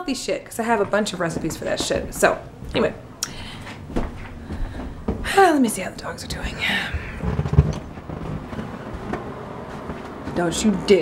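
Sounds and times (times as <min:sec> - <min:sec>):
camera handling rustling rumble: 0:07.2 - 0:09.2.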